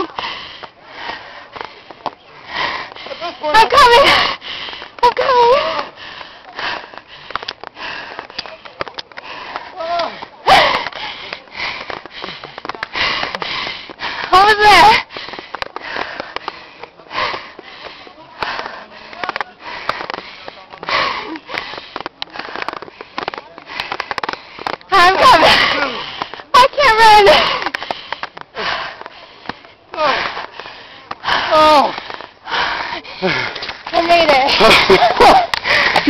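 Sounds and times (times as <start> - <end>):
person breathing hard: 0.0 - 36.0.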